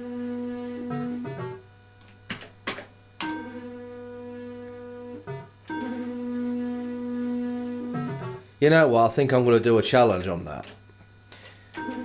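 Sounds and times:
fruit machine electronic tones: 0:00.0 - 0:01.7, 0:03.2 - 0:08.5, 0:11.8 - 0:12.0.

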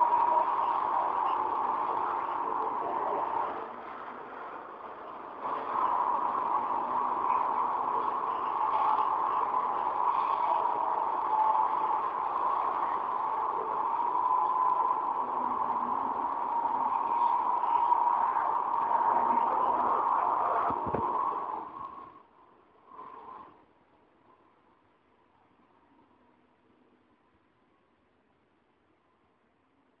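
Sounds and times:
muffled hiss: 0:00.0 - 0:30.0.

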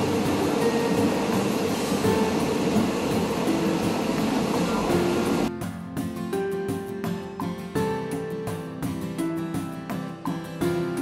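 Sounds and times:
passenger train running: 0:00.0 - 0:05.5
plucked-string tune: 0:00.0 - 0:09.0.

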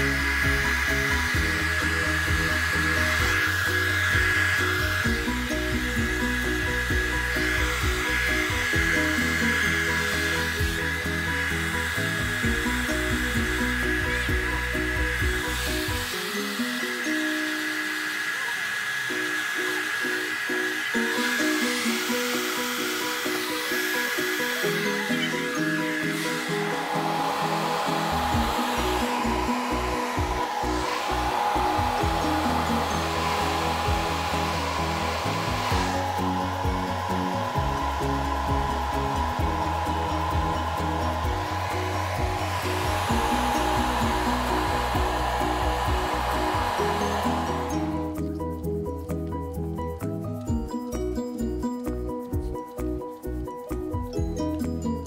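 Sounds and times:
background music: 0:00.0 - 0:18.9, 0:20.4 - 0:55.0
hair dryer running: 0:00.0 - 0:48.3.

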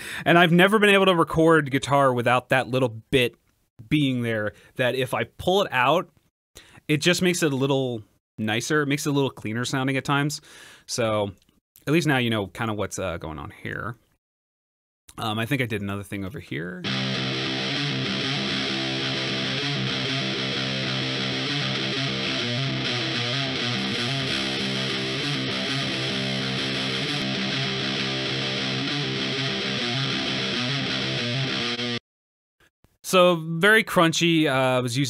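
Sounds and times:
distorted electric guitar chords: 0:16.8 - 0:32.0.

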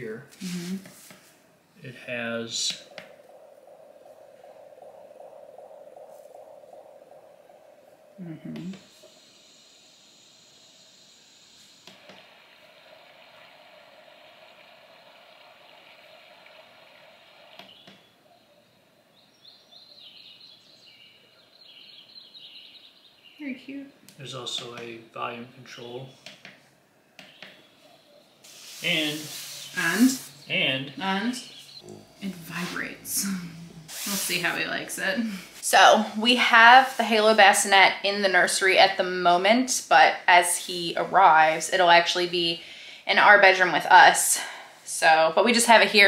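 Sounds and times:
fluttering soothing hum: 0:00.0 - 0:20.8, 0:31.4 - 0:39.8.

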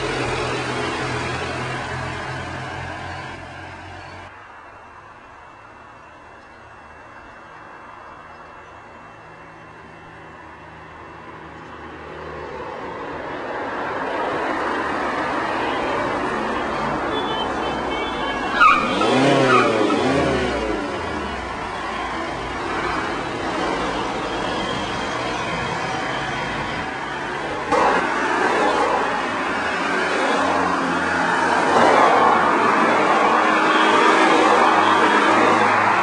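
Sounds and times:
cars driving past: 0:00.0 - 0:04.3, 0:09.3 - 0:36.0.

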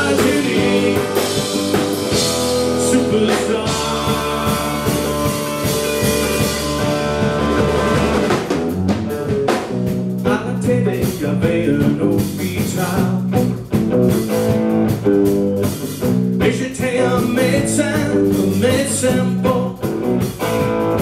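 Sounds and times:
drum kit: 0:00.0 - 0:21.0
electric bass: 0:00.0 - 0:21.0
electric guitar: 0:00.0 - 0:21.0.

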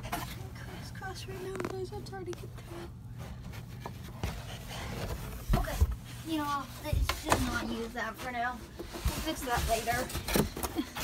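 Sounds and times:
rustling and handling noise: 0:00.0 - 0:11.0.

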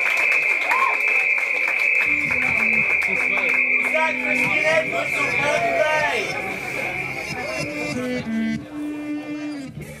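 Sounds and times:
electric guitar notes: 0:02.0 - 0:09.5.

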